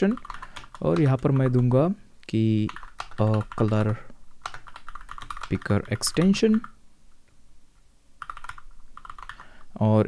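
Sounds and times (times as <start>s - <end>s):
computer keyboard typing: 0.0s - 1.8s, 2.6s - 6.8s, 8.2s - 9.5s.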